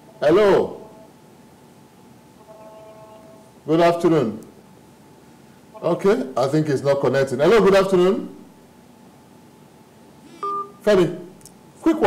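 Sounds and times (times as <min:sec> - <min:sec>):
man speaking: 0:00.2 - 0:00.9, 0:05.8 - 0:08.4, 0:10.8 - 0:12.0
electronic telephone beep: 0:10.4 - 0:10.8.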